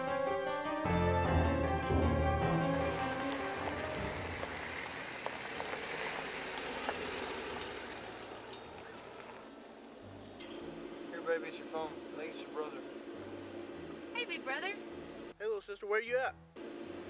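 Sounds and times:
music: 0.0s - 4.4s, 10.0s - 15.3s
tyres on gravel: 2.7s - 15.2s.

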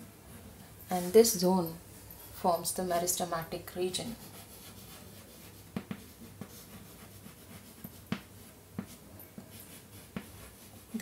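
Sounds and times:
faint steady hum: 0.0s - 11.0s
chalk scratching on blackboard: 0.4s - 11.0s
chalk tapping on blackboard: 3.0s - 11.0s.

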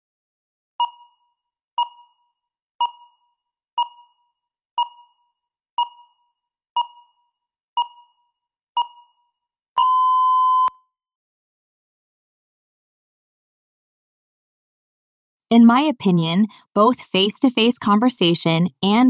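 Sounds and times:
short timer beeps: 0.8s - 1.2s, 2.8s - 4.2s, 6.8s - 7.2s
long steady beep: 0.8s - 10.8s.

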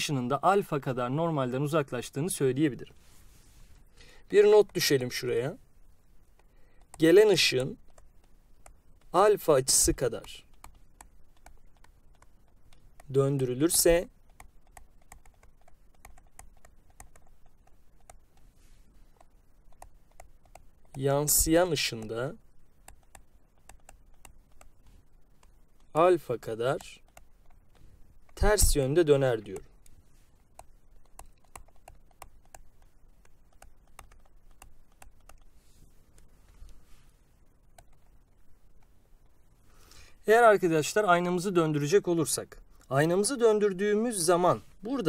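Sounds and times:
stylus tapping on graphics tablet: 9.8s - 18.5s, 19.1s - 22.2s, 22.8s - 26.0s, 26.8s - 28.8s, 29.5s - 35.6s
stylus tapping on pen tablet: 22.8s - 25.9s.

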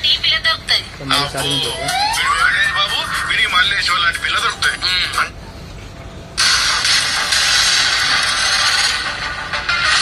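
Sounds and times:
movie soundtrack through phone speaker: 0.0s - 10.0s.

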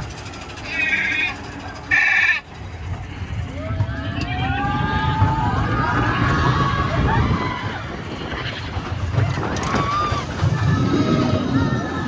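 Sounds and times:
roller coaster rumbling on track: 0.0s - 12.0s
riders screaming: 3.4s - 12.0s.

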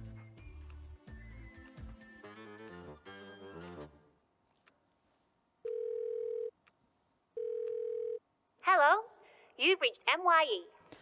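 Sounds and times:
telephone ringing tone: 5.7s - 6.5s, 7.4s - 8.2s
person speaking: 8.6s - 11.0s.

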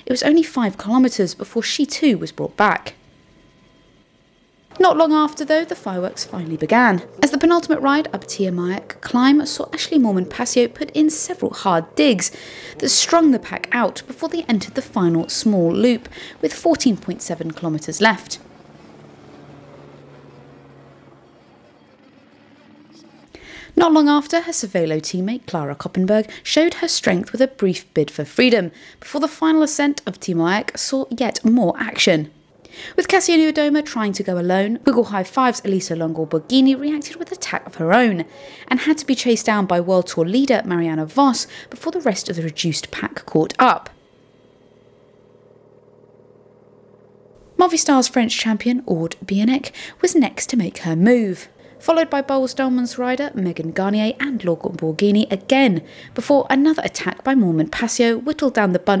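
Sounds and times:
low engine hum: 0.0s - 29.6s, 31.9s - 59.0s
road noise: 0.0s - 59.0s.

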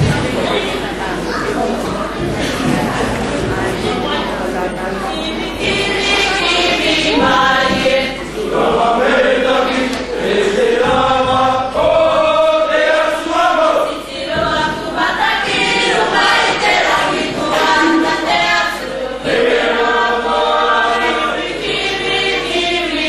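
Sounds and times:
youth choir singing: 0.0s - 23.0s.

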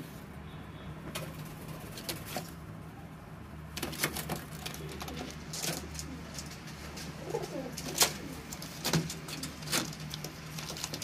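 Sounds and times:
pigeon cooing: 7.0s - 9.7s.

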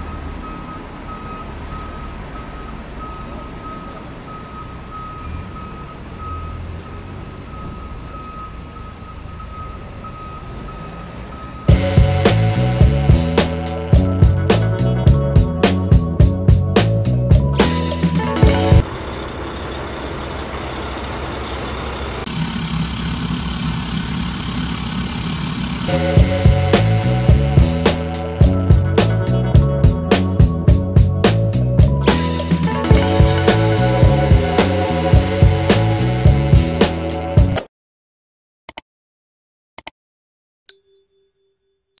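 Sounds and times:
background music with a beat: 11.7s - 18.8s, 25.9s - 37.6s.

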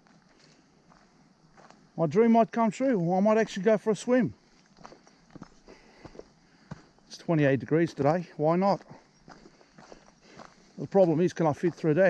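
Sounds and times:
footsteps on stony dirt trail: 0.0s - 12.0s.

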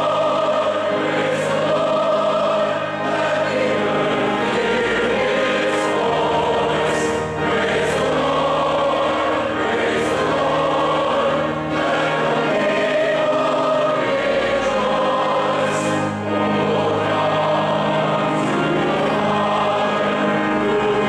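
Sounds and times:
congregation singing a hymn: 0.0s - 21.0s.

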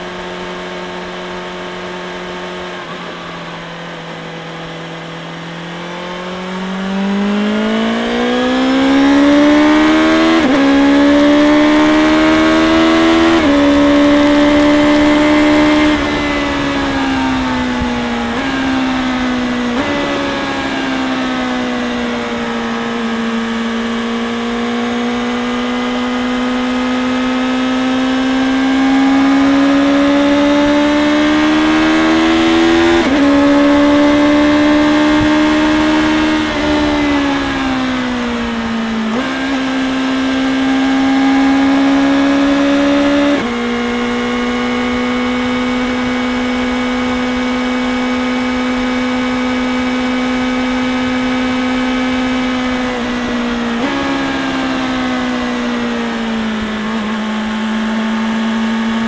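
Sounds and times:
motorcycle engine accelerating: 0.0s - 59.0s.

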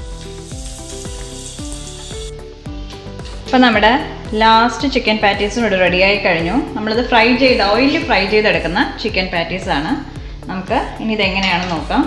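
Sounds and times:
hot oil sizzling: 0.0s - 3.4s
background music with steady beat: 0.0s - 12.0s.

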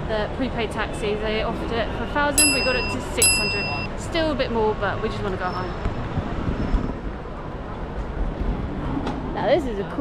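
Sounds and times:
road traffic rumble and hiss: 0.0s - 10.0s.

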